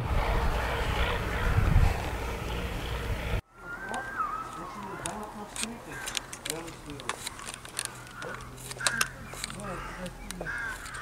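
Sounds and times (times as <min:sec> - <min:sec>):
steady low hum: 0:00.0 - 0:03.4
bird calls: 0:02.3 - 0:11.0.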